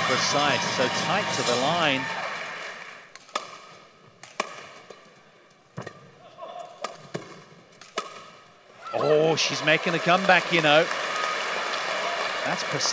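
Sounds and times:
racket striking shuttlecock: 3.1s - 5.1s, 6.8s - 8.5s.

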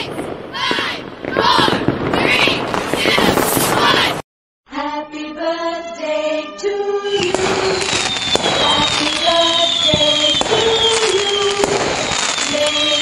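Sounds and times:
fireworks popping and crackling: 0.0s - 4.2s, 7.1s - 13.0s
falling firework whistles: 1.3s - 4.2s, 6.2s - 13.0s.

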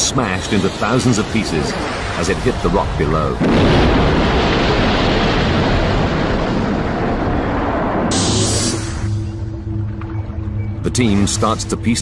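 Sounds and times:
loud sustained rumbling impact: 3.3s - 9.8s.

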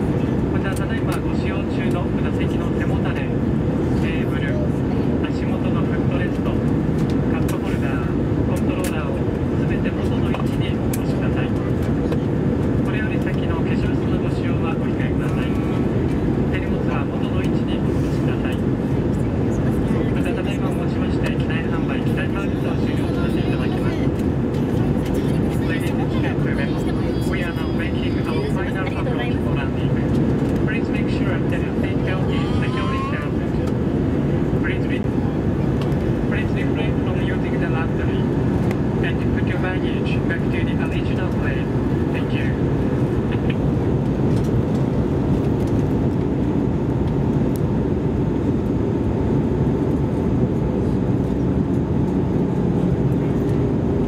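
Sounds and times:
airliner cabin engine noise: 0.0s - 54.0s.

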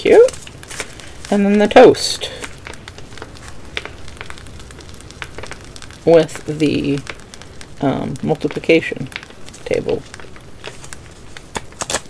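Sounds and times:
paper cards crackling in fingers: 0.0s - 12.0s.

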